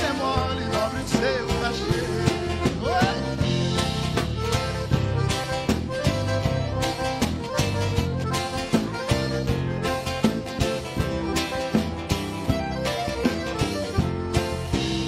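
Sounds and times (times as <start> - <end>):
acoustic guitar: 0.0 - 15.0
electric bass: 0.0 - 15.0
hand drums beating: 0.0 - 15.0
piano accordion melody: 0.0 - 15.0.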